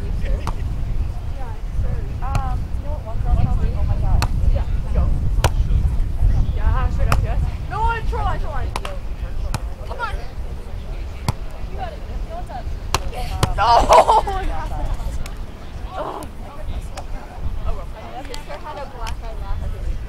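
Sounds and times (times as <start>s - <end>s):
players shouting: 13.2s - 14.6s, 15.8s - 16.4s.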